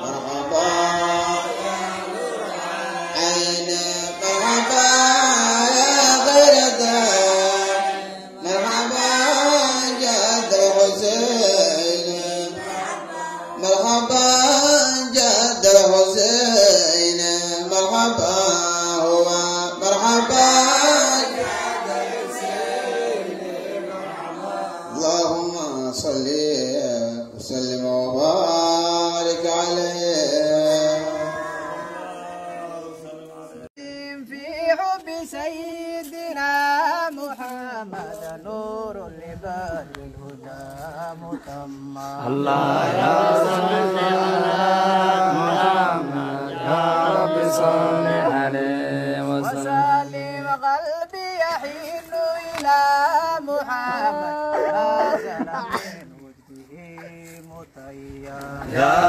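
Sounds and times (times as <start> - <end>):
man chanting into a microphone: 3.1 - 12.6, 13.6 - 21.4, 24.9 - 31.3, 33.0 - 59.0.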